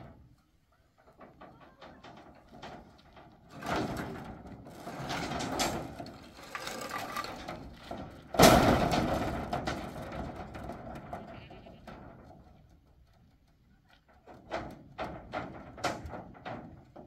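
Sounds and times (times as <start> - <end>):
steel rods clattering: 0.9 - 11.0
steel rods scraping metal sheet: 4.6 - 7.7.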